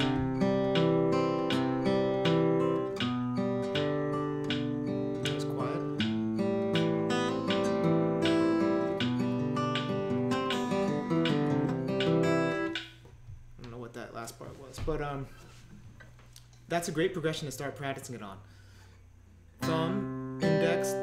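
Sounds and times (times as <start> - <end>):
fingerpicked acoustic guitar: 0.0 - 13.0, 19.5 - 21.0.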